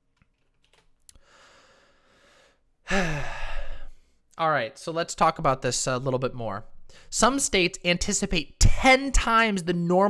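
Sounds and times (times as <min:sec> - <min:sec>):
woman breathing in: 0:01.2 - 0:04.2
woman sighing: 0:02.9 - 0:04.0.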